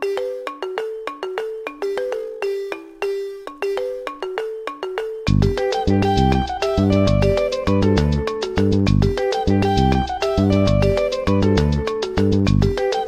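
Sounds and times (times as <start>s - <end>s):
light melody of bright notes: 0.0s - 13.0s
accompaniment with bass: 5.3s - 13.0s.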